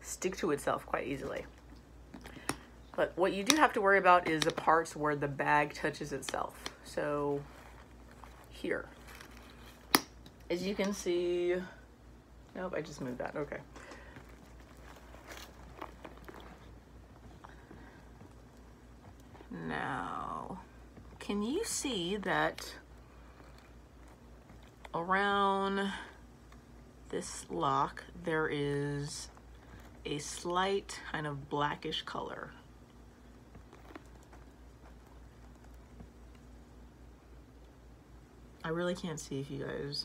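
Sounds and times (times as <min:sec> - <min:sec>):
steady low hum: 0:00.0 - 0:40.0
handbag clicks and taps: 0:03.4 - 0:03.6
leather handbag crinkling: 0:06.5 - 0:09.9, 0:13.0 - 0:22.2, 0:32.8 - 0:36.7.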